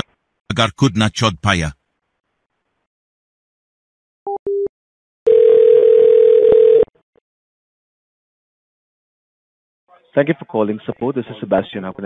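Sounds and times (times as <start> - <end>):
steady telephone tone: 5.3 - 6.9.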